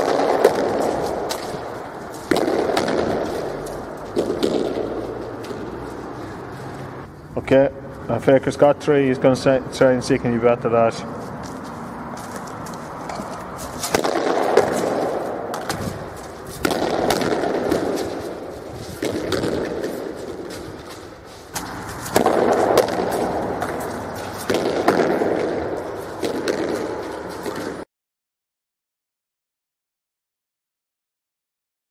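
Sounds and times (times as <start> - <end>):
hurley striking ball against wall: 0.0 - 5.8, 13.1 - 20.1, 21.5 - 27.8.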